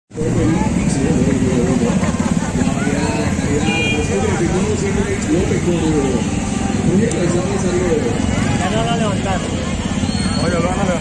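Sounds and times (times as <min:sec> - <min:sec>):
vehicle engine running: 0:00.1 - 0:11.0
people talking: 0:00.2 - 0:11.0.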